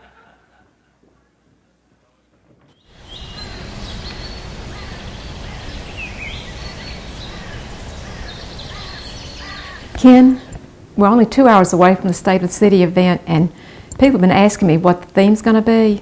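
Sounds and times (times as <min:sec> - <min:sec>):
steady outdoor hiss: 0:00.0 - 0:16.0
birds chirping: 0:02.6 - 0:11.9.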